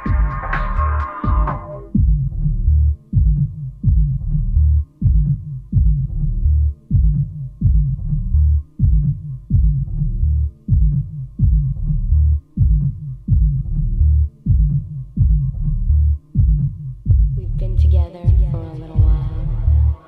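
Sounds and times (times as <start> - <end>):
throbbing bass pulse: 0.0 - 20.0.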